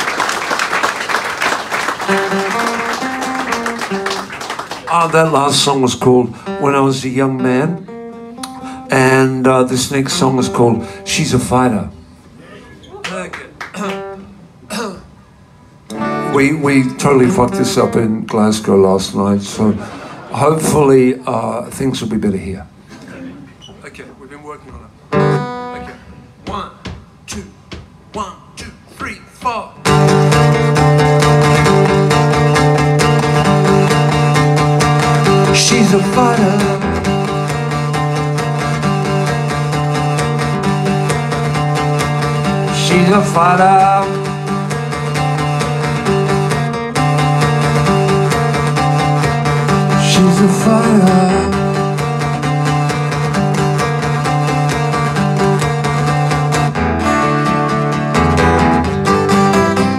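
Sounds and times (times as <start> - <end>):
acoustic guitar chords strummed: 2.0 - 12.0, 15.8 - 20.9, 25.1 - 26.6, 29.8 - 59.9.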